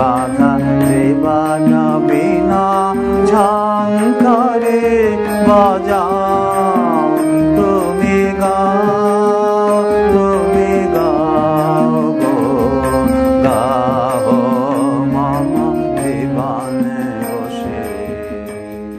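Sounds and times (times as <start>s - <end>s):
devotional song with vibrato: 0.0s - 18.9s
steady accompaniment: 0.0s - 18.9s.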